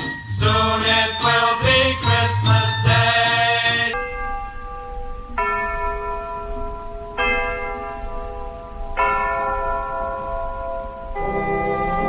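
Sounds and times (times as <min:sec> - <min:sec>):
bells ringing: 0:00.0 - 0:12.0.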